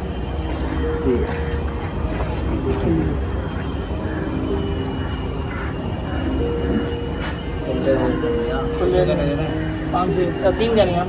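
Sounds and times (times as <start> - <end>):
people talking indistinctly: 0.4 - 11.0.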